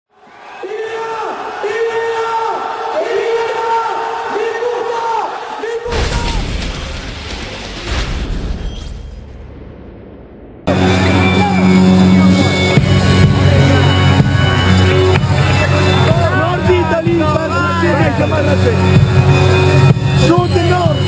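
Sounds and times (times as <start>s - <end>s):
deep boom: 5.9s - 11.1s.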